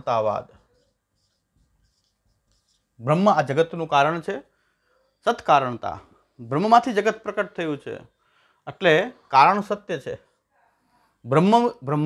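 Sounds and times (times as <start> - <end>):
marker pen scratching on whiteboard: 0.0 - 4.3.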